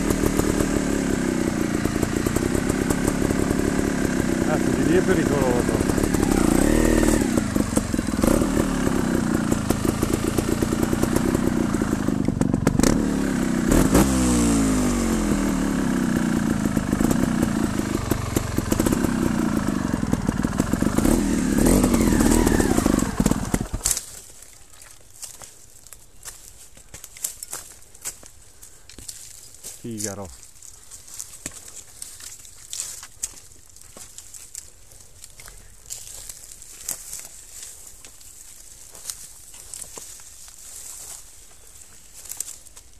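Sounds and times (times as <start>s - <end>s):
motorcycle engine revving: 0.0s - 24.1s.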